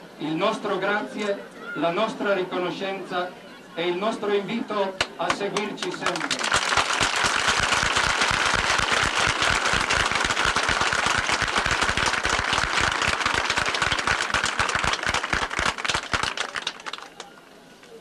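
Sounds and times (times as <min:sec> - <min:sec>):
large crowd applauding: 0:05.3 - 0:17.4.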